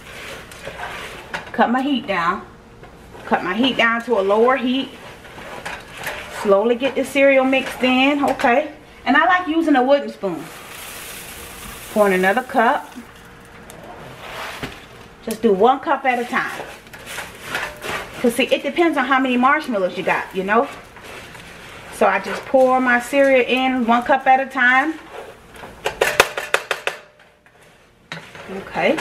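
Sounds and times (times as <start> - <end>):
spoon stirring cereal rustle: 10.3 - 13.5, 16.0 - 24.2
cereal pouring into pot: 10.4 - 13.5.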